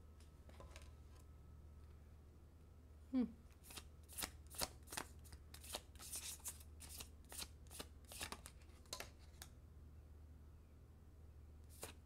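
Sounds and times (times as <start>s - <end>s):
cards being shuffled: 3.6s - 9.5s, 11.7s - 12.0s.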